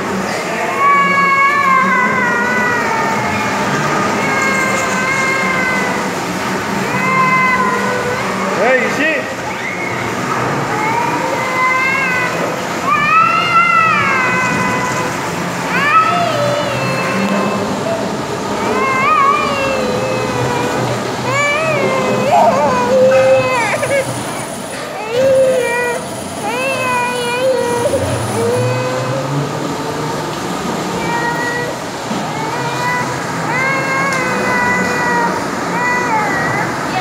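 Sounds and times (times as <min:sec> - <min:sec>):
bumper-car hall noise: 0:00.0 - 0:37.0
high-pitched squealing calls: 0:21.3 - 0:24.5.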